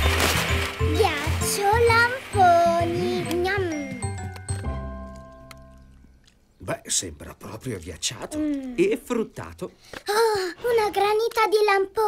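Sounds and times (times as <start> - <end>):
playful cartoon music: 0.0 - 6.0.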